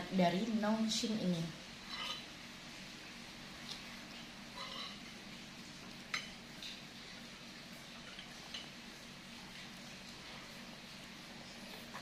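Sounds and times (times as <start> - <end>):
faint steady hum: 0.0 - 12.0
cutlery clinking on glass bowl: 4.6 - 5.0.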